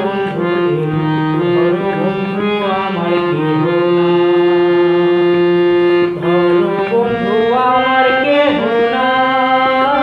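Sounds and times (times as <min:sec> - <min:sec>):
harmonium held note: 0:00.0 - 0:10.0.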